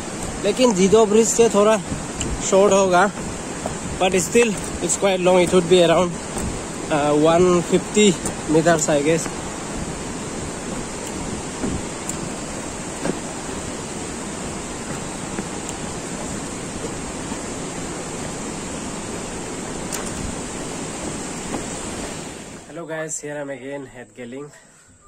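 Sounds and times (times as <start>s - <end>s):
river rapids rushing: 0.0s - 22.7s.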